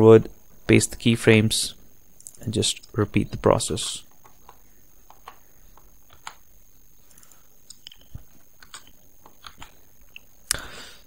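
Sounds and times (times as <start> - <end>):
low background noise: 0.0 - 11.0
computer mouse and keyboard clicks: 4.2 - 6.4.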